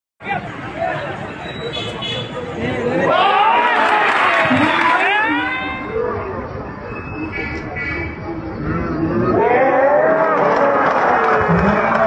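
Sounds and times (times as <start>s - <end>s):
indistinct chatter: 0.2s - 12.0s.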